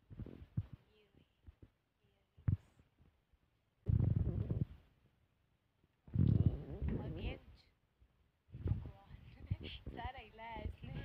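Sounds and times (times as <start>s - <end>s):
phone microphone handling noise: 0.1s - 1.7s, 3.9s - 4.9s, 6.1s - 7.4s, 8.5s - 11.0s.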